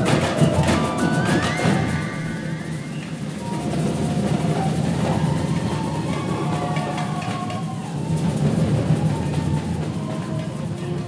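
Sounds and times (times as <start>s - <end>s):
faint sustained melodic notes: 0.0s - 6.6s
percussion ensemble drumming: 0.0s - 11.0s.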